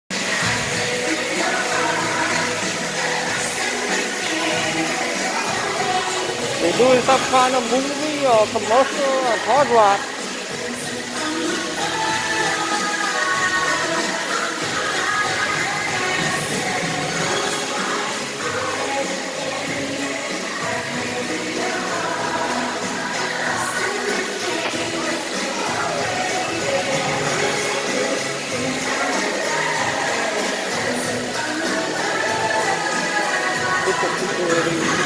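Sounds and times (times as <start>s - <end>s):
background music with singing: 0.1s - 35.0s.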